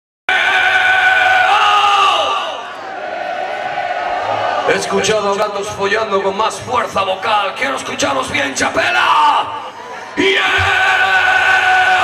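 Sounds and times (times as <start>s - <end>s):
crowd noise: 0.3s - 12.0s.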